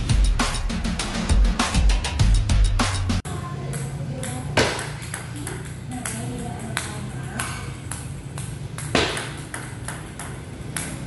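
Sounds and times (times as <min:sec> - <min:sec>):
intro music: 0:00.0 - 0:03.2
table tennis ball clicking: 0:03.7 - 0:11.0.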